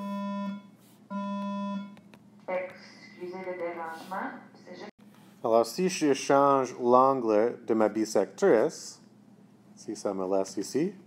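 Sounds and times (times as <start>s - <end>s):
electronic buzzer: 0.0s - 2.0s.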